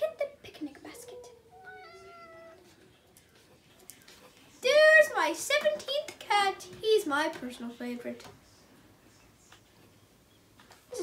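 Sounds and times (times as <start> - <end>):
cat meowing: 1.3 - 2.7.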